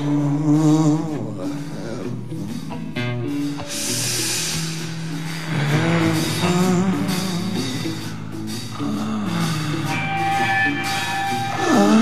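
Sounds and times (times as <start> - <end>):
rock band playing: 0.0 - 12.0
cymbal wash: 3.4 - 12.0.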